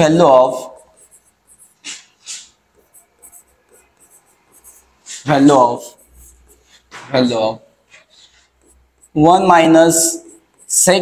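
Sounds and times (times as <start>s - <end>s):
chalk scratching on blackboard: 0.0s - 7.1s, 7.9s - 11.0s.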